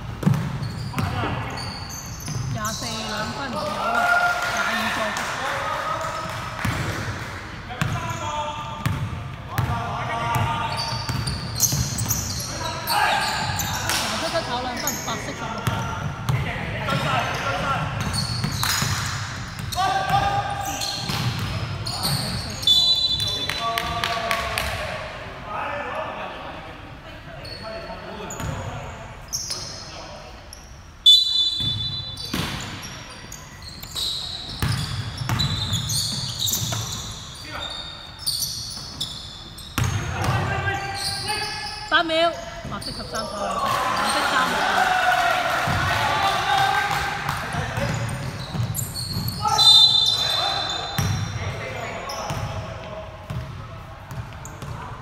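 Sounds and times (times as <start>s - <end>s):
sneaker squeaks: 0.1s - 5.0s, 7.8s - 23.9s, 27.4s - 44.6s, 47.5s - 52.7s, 53.3s - 55.0s
basketball bouncing: 0.2s - 1.3s, 8.8s - 10.5s, 34.5s - 36.9s, 53.3s - 54.8s
high squeak: 31.1s - 40.0s
players calling out: 39.9s - 52.6s.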